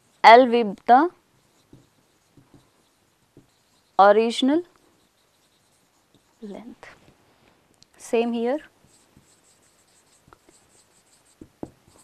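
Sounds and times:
marker squeaking on whiteboard: 0:01.3 - 0:07.0, 0:08.6 - 0:12.0.

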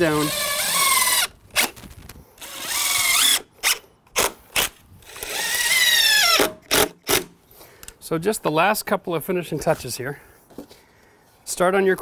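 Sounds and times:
impact driver driving screws: 0:00.1 - 0:01.8, 0:02.4 - 0:07.3.

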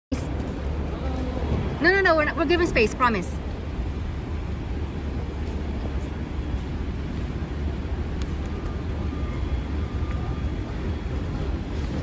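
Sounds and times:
city traffic rumble: 0:00.1 - 0:12.0.

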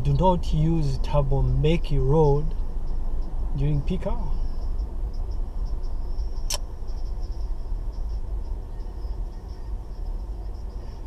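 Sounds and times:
car engine and road rumble: 0:00.0 - 0:11.0
faint high wavering whine: 0:00.0 - 0:11.0
sharp click: 0:06.4 - 0:06.7.

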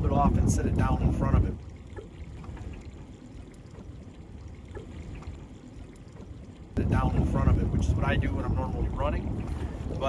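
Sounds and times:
wind noise on microphone: 0:00.0 - 0:02.9, 0:06.8 - 0:10.0
faint water lapping: 0:00.0 - 0:10.0
low rumble of water and wind: 0:00.0 - 0:10.0.

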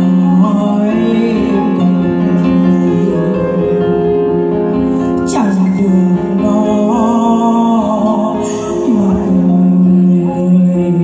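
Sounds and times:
electronic keyboard ballad chords: 0:00.0 - 0:11.0.

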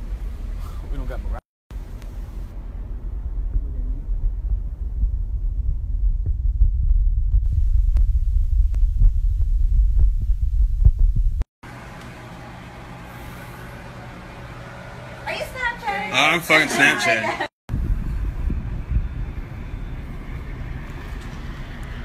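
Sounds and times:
steady low hum: 0:00.0 - 0:16.5, 0:17.7 - 0:22.0
wind buffeting microphone: 0:17.7 - 0:22.0.

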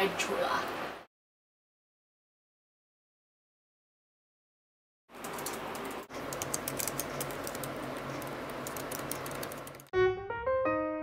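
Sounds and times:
laptop keyboard typing: 0:05.1 - 0:09.9.

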